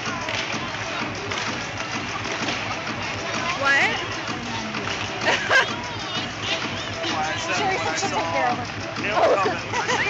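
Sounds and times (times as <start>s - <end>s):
murmur of crowd chatter: 0.0s - 10.0s
music over loudspeakers: 0.0s - 10.0s.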